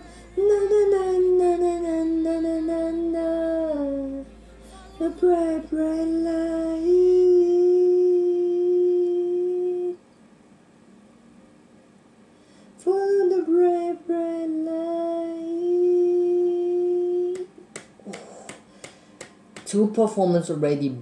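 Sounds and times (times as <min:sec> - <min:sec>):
person singing long notes: 0:00.0 - 0:10.0, 0:12.8 - 0:18.6.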